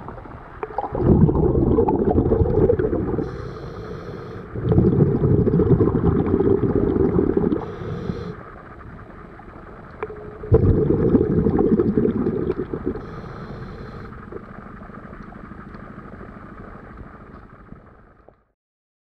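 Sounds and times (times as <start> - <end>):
exhaled bubbles gurgling underwater: 0.0 - 18.4
regulator inhalation hiss: 2.9 - 4.6, 6.4 - 8.8, 11.3 - 14.4.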